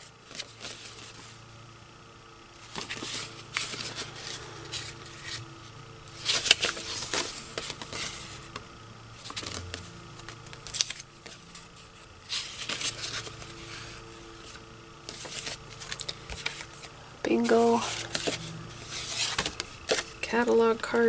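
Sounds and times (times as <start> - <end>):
paper sheets rustling: 0.0 - 1.4, 2.6 - 5.4, 6.1 - 8.6, 9.2 - 20.3.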